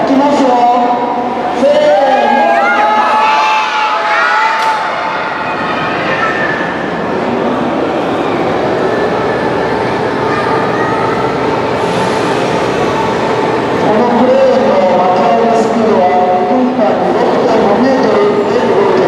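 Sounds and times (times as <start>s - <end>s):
crowd murmuring: 4.7s - 19.0s.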